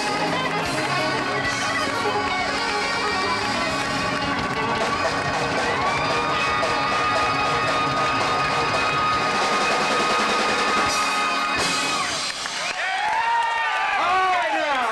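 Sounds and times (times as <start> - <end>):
drums: 0.0 - 14.9.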